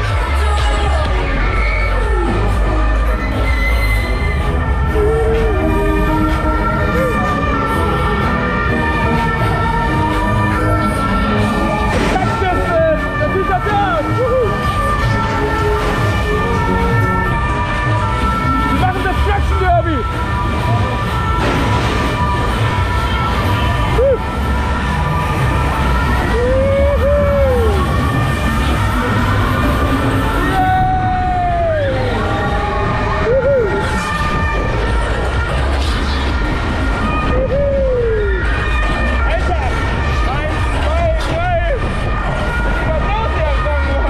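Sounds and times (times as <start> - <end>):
rising and falling whoop: 22.1 - 35.8, 36.6 - 39.0.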